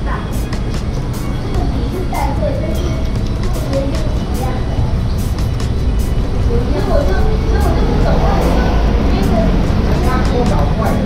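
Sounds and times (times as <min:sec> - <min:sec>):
faint background voices: 0:00.0 - 0:11.0
low rumble: 0:00.0 - 0:11.0.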